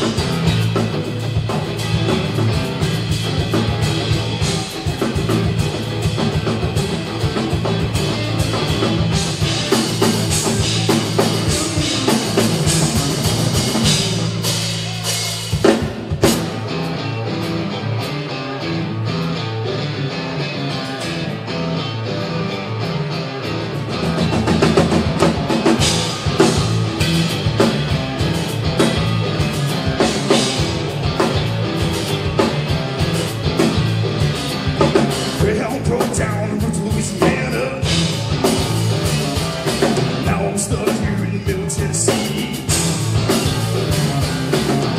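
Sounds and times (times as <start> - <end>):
drum kit beat: 0.0 - 18.4, 23.6 - 44.9
bass guitar: 0.0 - 44.9
electric guitar: 0.0 - 44.9.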